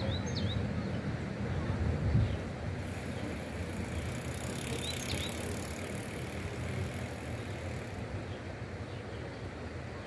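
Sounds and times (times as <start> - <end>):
bicycle freewheel buzzing: 2.8 - 8.1.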